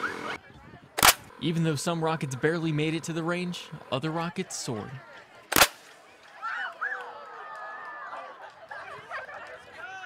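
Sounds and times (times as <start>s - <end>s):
children calling and chattering: 0.0s - 10.0s.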